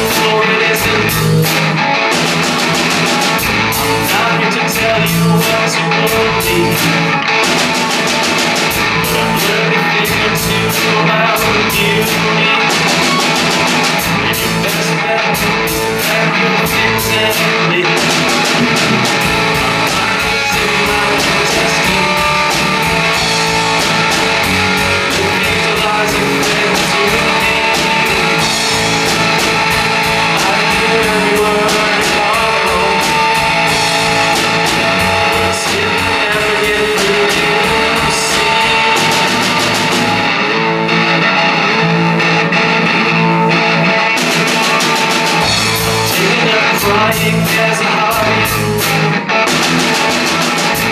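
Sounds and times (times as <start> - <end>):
drum kit: 0.0 - 50.9
electric guitar: 0.0 - 50.9.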